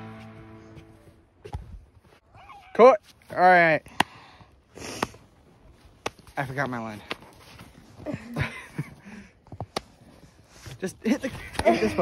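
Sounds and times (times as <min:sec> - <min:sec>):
person sniffing: 0:04.8 - 0:05.2.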